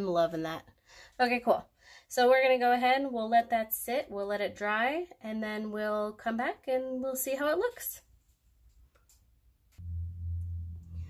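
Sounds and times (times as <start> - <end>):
low steady hum: 9.7 - 11.0.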